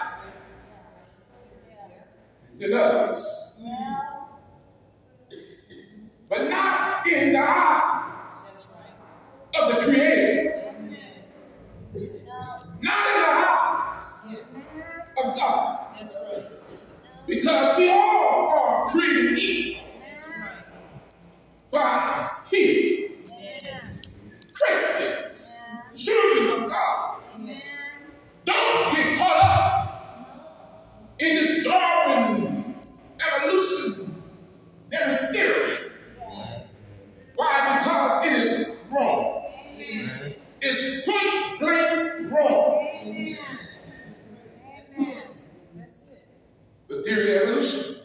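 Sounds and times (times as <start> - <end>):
man preaching over a microphone: 0.0 - 0.4, 2.6 - 3.6, 6.3 - 8.8, 9.5 - 10.9, 11.9 - 14.2, 15.0 - 20.9, 21.7 - 27.7, 28.4 - 30.5, 31.2 - 44.1, 46.9 - 48.0
man speaking: 2.4 - 3.6, 6.3 - 27.7, 28.4 - 45.4, 46.9 - 48.0.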